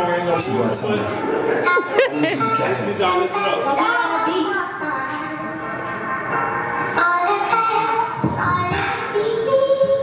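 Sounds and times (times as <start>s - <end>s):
hip-hop backing track: 0.3s - 10.0s.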